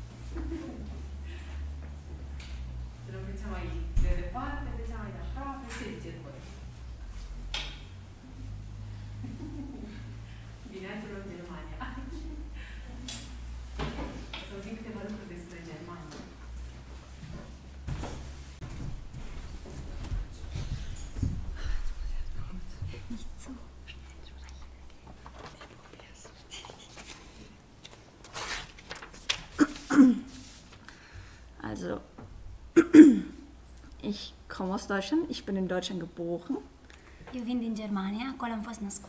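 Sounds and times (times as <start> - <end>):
steady low hum: 0.0 - 28.2
faint whispering and low voices: 21.6 - 27.0.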